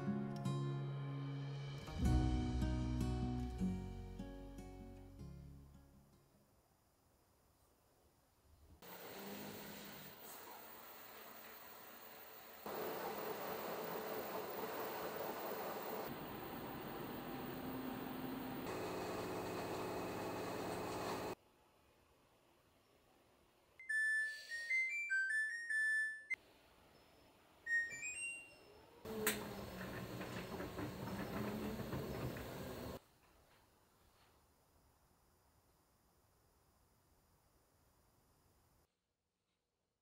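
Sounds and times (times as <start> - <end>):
washing machine beeping melody: 23.8 - 26.4, 27.7 - 28.9.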